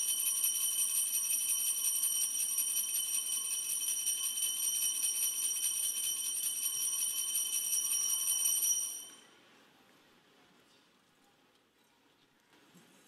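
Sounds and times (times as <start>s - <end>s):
altar bells jingling: 0.0s - 9.2s.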